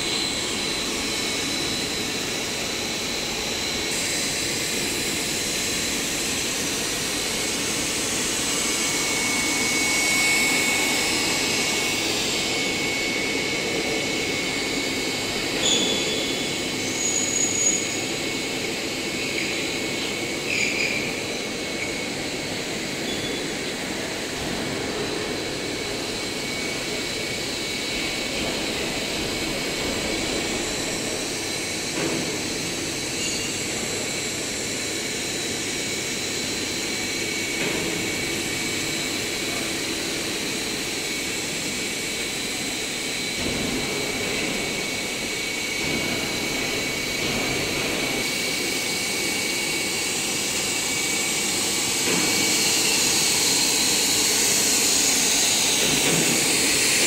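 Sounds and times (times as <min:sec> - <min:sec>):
steady machine noise: 0:00.0 - 0:57.0
thin high machine whines: 0:00.0 - 0:57.0.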